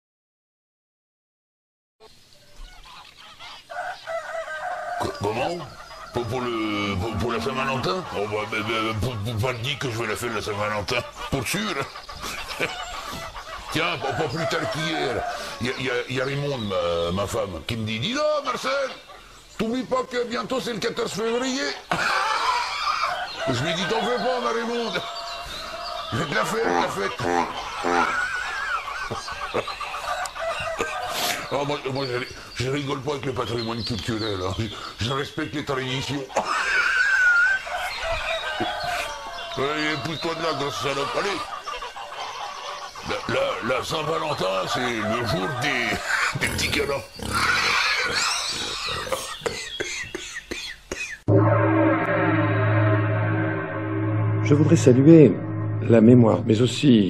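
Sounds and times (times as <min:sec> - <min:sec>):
chickens clucking: 0:02.0 - 0:51.7
rooster crowing: 0:03.6 - 0:08.9, 0:12.9 - 0:15.9, 0:22.0 - 0:26.7, 0:30.0 - 0:31.5, 0:36.4 - 0:41.4.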